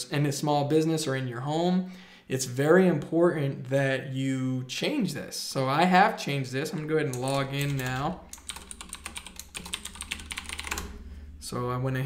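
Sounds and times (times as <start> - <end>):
typing on computer keyboard: 7.1 - 11.0.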